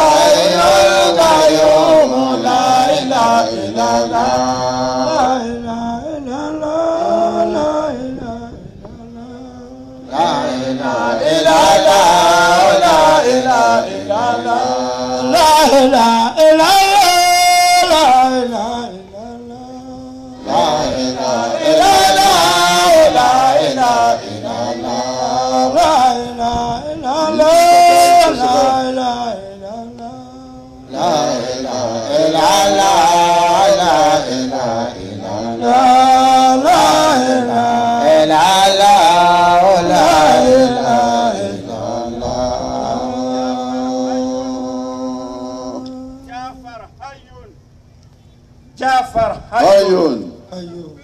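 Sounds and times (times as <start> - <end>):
men chanting: 0.0 - 47.7, 48.9 - 51.0.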